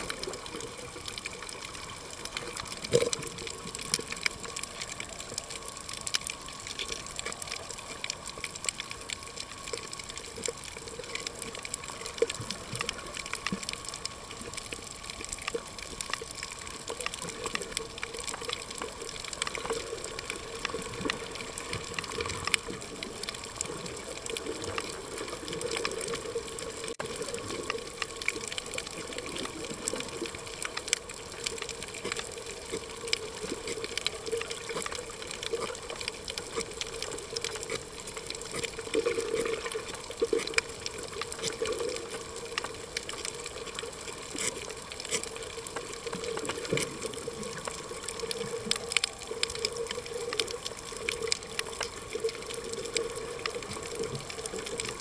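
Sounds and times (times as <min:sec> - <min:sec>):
small underwater clicks: 0:00.0 - 0:55.0
underwater rushing water noise: 0:00.0 - 0:55.0.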